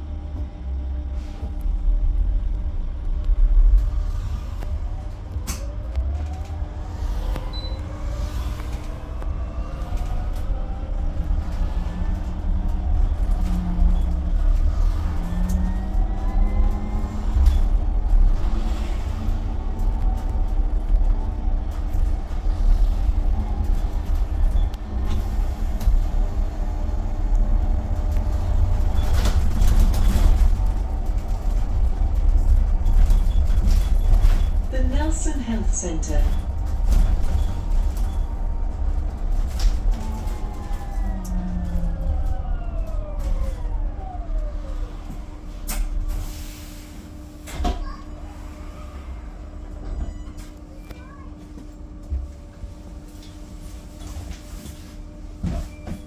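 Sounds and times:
road and tyre rumble: 0.0 - 56.0.

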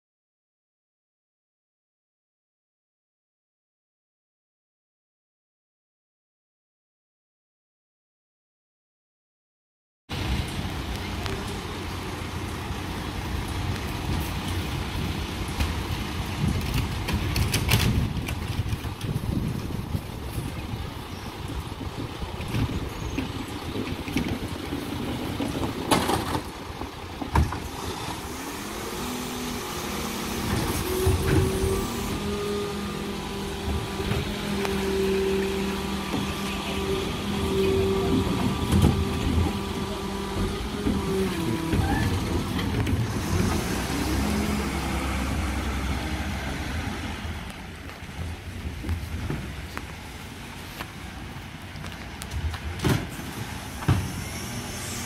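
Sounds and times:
diesel engine running: 10.1 - 55.0
hydraulic whine: 27.1 - 47.4, 53.0 - 55.0.

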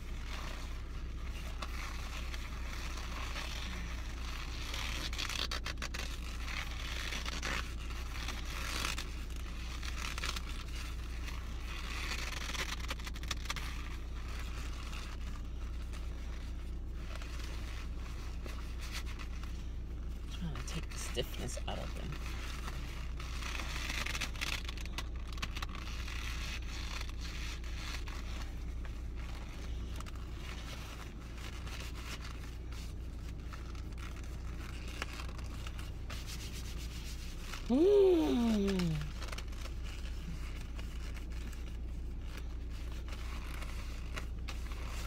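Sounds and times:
leather gloves rubbing and creaking: 0.0 - 45.0
leather squeaks: 0.0 - 45.0
steady low hum: 0.0 - 45.0.

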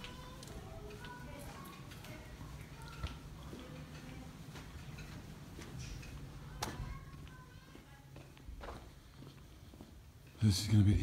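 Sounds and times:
soft footsteps: 0.0 - 10.4
faint distant voices or music: 0.0 - 11.0.

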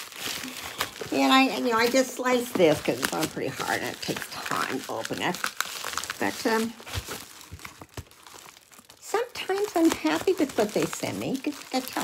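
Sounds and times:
package rustling: 0.0 - 12.0.

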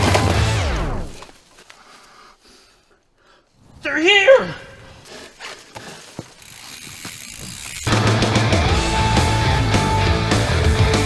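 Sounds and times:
loud rock music: 0.0 - 0.9, 7.9 - 11.0
tyres on trail: 0.0 - 11.0
bicycle freewheel clicking: 6.2 - 8.2.

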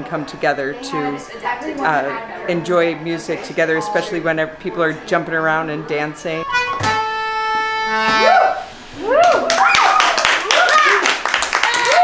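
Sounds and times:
tune: 6.4 - 8.6
high whoops: 8.1 - 12.0
children clapping and cheering: 9.1 - 12.0.

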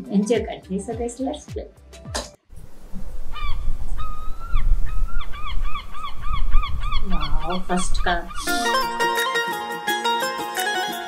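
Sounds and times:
geese honking: 5.4 - 9.1.

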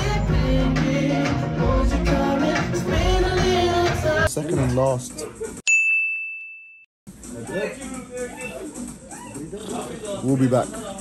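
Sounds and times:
bright ding: 5.7 - 6.8
room noise with voices: 7.1 - 11.0.

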